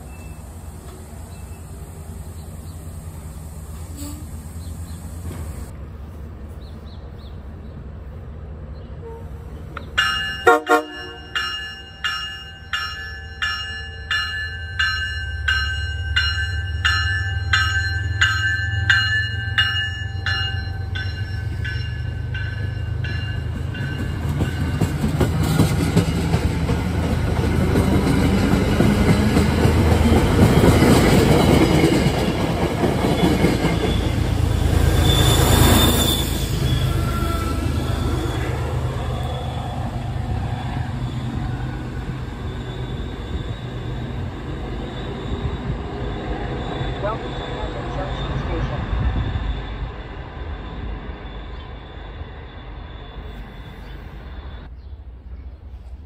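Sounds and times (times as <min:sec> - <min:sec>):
train coaches rumbling past: 0:00.0 - 0:56.0
high wheel squeal: 0:03.7 - 0:05.7, 0:33.1 - 0:54.7
train bell ringing: 0:10.0 - 0:25.2.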